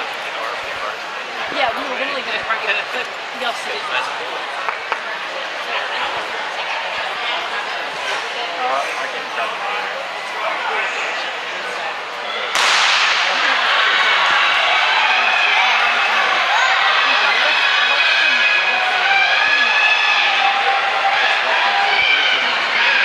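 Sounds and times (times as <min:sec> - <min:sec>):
crowd cheering and shouting: 0:00.0 - 0:23.0.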